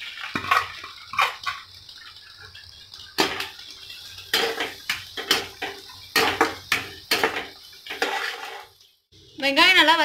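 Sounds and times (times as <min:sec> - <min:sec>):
onions frying: 0:00.0 - 0:10.0
spatula scraping a pan: 0:00.2 - 0:01.6, 0:04.3 - 0:08.8.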